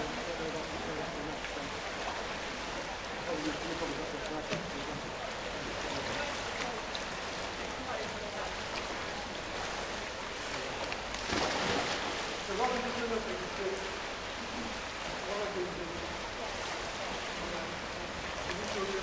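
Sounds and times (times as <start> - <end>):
swimmers splashing: 1.1 - 15.4.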